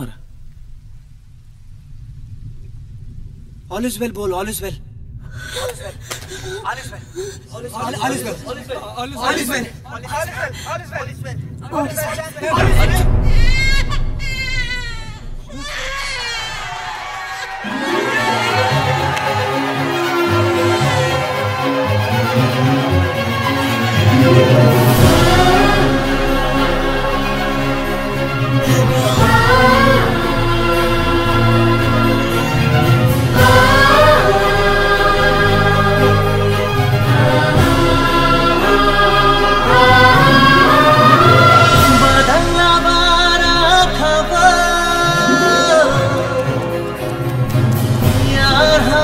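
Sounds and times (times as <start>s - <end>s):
film score music: 0.0s - 49.0s
choir singing held notes: 12.5s - 49.0s.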